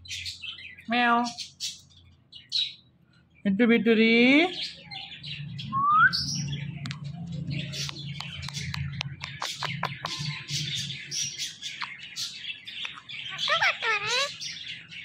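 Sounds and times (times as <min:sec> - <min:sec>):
parakeet chirping and squeaking: 0:05.0 - 0:14.9
parakeet clicking: 0:07.8 - 0:10.3, 0:12.7 - 0:14.3
parakeet mimicking talk: 0:09.2 - 0:10.4, 0:11.6 - 0:14.6.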